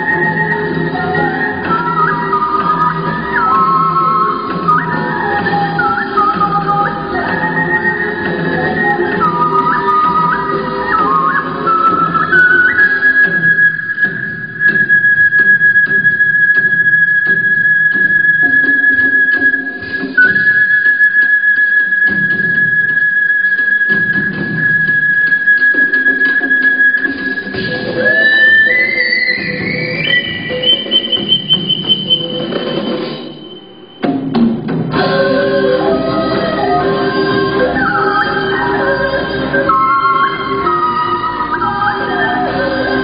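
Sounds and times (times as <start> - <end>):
backing track music: 0.0 - 43.0.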